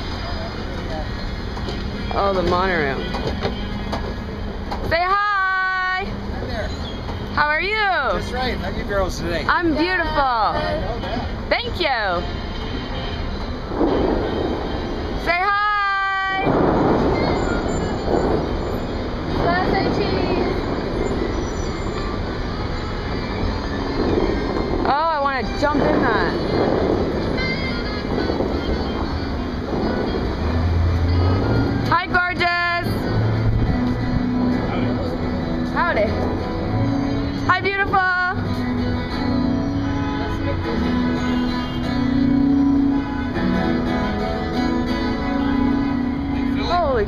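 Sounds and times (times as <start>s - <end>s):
fountain jets rushing: 0.0s - 36.8s
monorail train rumbling past: 0.0s - 47.0s
street traffic: 0.0s - 47.0s
faint voices: 4.8s - 42.3s.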